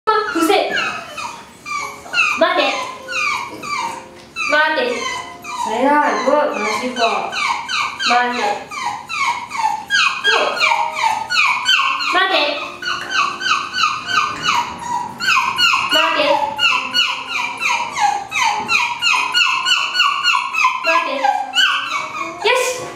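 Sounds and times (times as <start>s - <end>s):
small dog whining yips: 0.1s - 22.9s.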